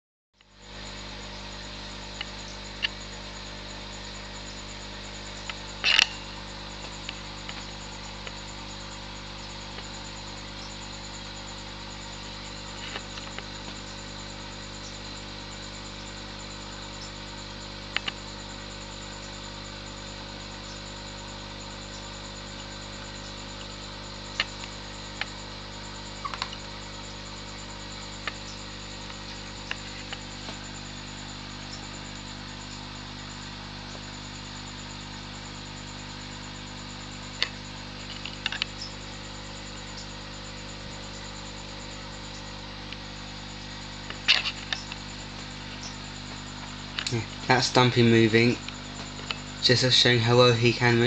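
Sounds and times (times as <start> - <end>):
low hiss and hum: 0.4 - 51.0.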